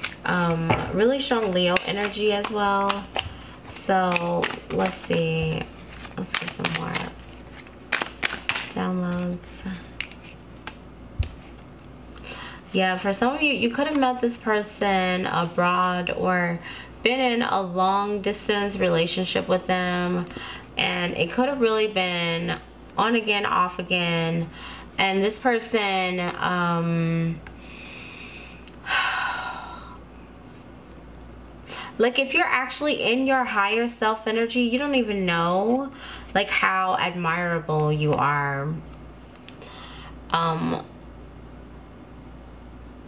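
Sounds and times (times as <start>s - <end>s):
woman breathing: 12.2s - 12.7s, 16.6s - 17.0s, 20.3s - 20.7s, 24.5s - 24.9s, 27.6s - 30.0s, 39.6s - 40.2s.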